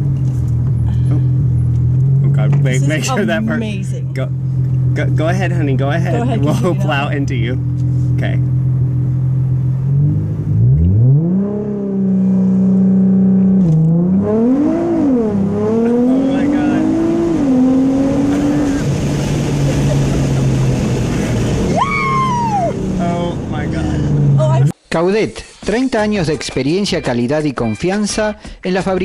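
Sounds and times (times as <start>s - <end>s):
car engine revving and accelerating: 0.0s - 24.7s
falling whoop: 21.7s - 22.8s.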